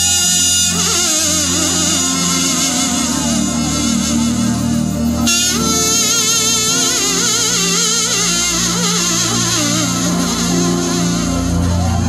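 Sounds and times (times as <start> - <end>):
steady held drone: 0.0 - 12.0
wavering melody line: 0.0 - 12.0.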